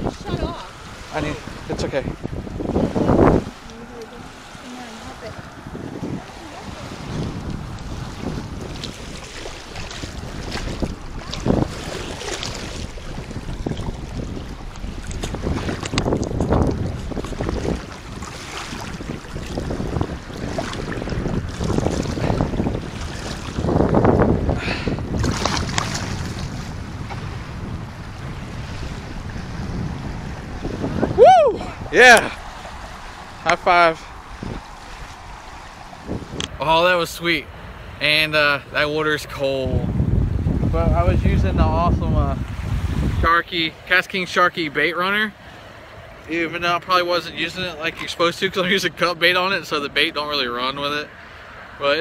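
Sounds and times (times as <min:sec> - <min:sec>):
shallow water sloshing and splashing: 0:00.0 - 0:31.0, 0:31.7 - 0:36.6
wind buffeting microphone: 0:00.0 - 0:44.5.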